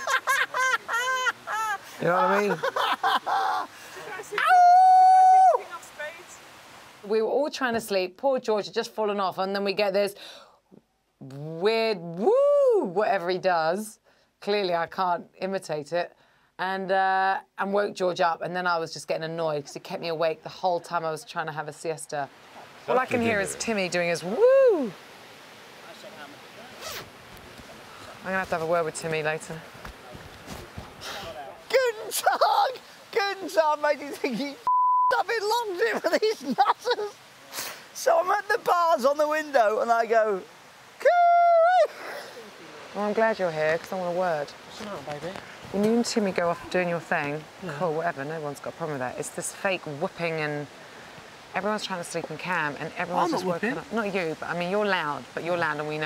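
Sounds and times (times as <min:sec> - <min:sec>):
man laughing loudly: 0:00.0 - 0:03.7, 0:35.7 - 0:37.2
faint background hiss: 0:00.0 - 0:56.0
jacket zip pulled: 0:26.8 - 0:27.2.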